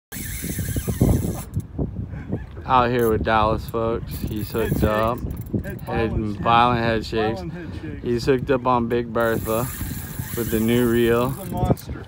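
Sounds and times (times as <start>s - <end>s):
fishing reel drag buzzing: 0.1s - 1.7s, 4.1s - 5.6s, 9.2s - 11.7s.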